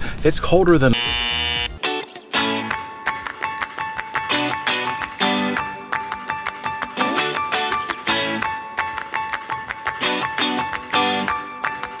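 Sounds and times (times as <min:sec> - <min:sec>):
harsh buzzing tone: 0:00.9 - 0:01.8
intro music with plucked notes: 0:01.0 - 0:12.0.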